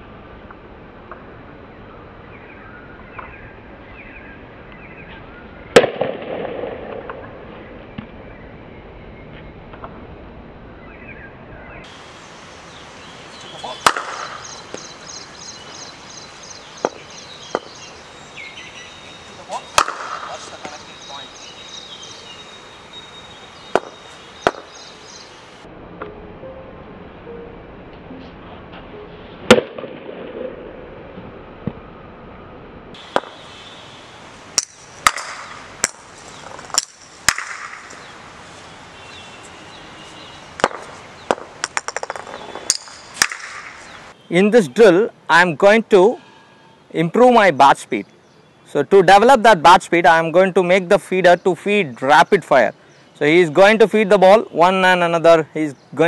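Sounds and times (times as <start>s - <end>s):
cricket bat striking balls: 13.7s - 14.9s, 16.8s - 17.8s, 19.6s - 20.9s, 23.7s - 24.8s, 33.1s - 33.4s, 34.6s - 38.1s, 40.6s - 43.9s.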